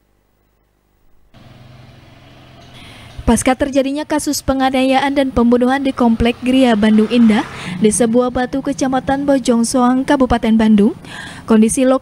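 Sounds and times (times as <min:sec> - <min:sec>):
motor scooter engines running: 0:01.3 - 0:11.5
street traffic: 0:01.3 - 0:12.0.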